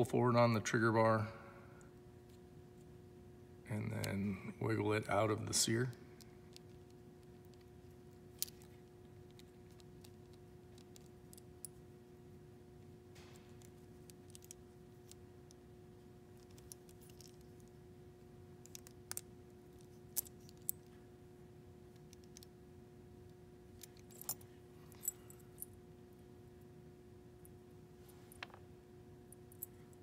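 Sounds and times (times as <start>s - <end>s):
faint steady hum: 0.0s - 30.0s
small metal parts clicking: 8.3s - 11.8s, 13.5s - 15.2s, 16.3s - 17.8s.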